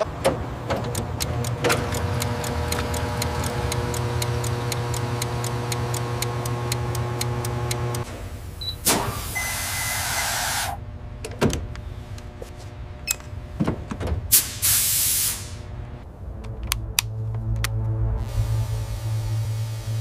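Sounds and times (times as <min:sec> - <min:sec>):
fuel pump humming and ticking: 0:00.1 - 0:08.1
hiss of air from tyre inflator: 0:08.8 - 0:10.8, 0:14.3 - 0:15.6.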